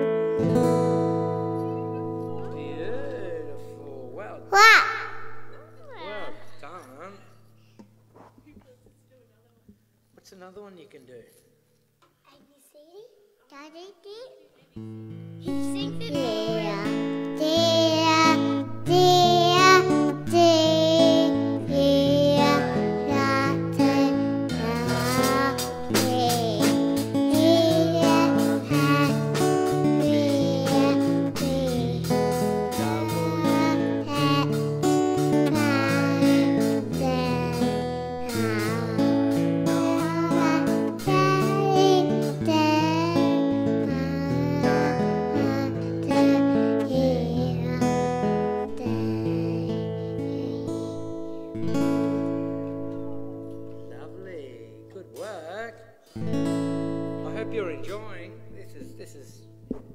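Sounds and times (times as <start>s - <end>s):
acoustic guitar strummed: 0.0s - 6.0s, 14.8s - 59.9s
young child singing: 2.6s - 5.6s, 15.4s - 52.5s.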